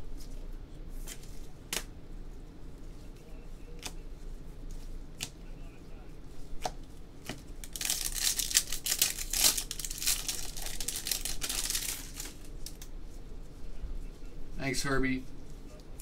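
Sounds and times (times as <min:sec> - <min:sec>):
foil wrapper crinkling: 0:07.4 - 0:12.9.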